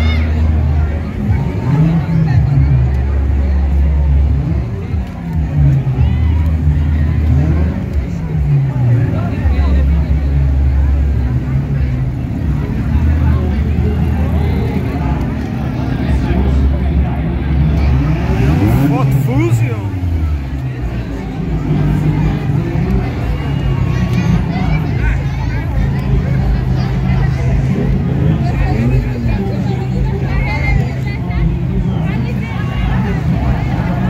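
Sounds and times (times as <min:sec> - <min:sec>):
car engines revving: 0:00.0 - 0:34.0
crowd chatter: 0:00.0 - 0:34.0.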